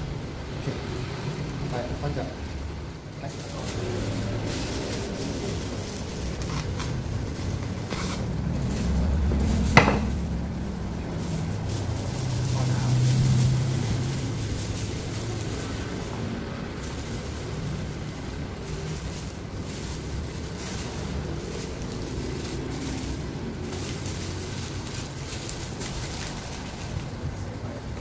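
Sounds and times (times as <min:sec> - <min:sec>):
bubble wrap rustling and crinkling: 0:00.0 - 0:28.0
steady low rumble: 0:00.0 - 0:28.0.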